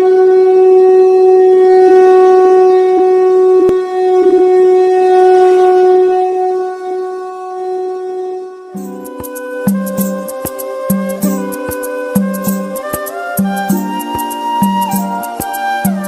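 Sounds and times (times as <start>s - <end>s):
conch shell blown: 0.0s - 16.0s.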